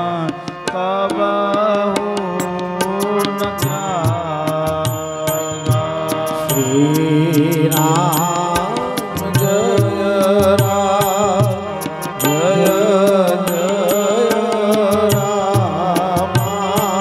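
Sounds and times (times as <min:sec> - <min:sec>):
percussion strikes: 0:00.0 - 0:17.0
person singing devotional song: 0:00.0 - 0:17.0.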